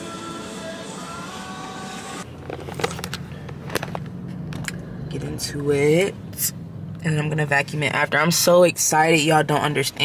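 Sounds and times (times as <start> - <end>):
background music: 0.0 - 2.2
car engine hum inside cabin: 0.0 - 10.0.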